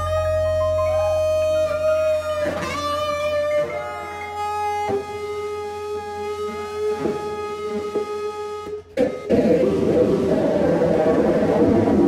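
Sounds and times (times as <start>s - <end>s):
sustained electric bass note: 0.0s - 5.0s
soft plucked notes: 0.0s - 12.0s.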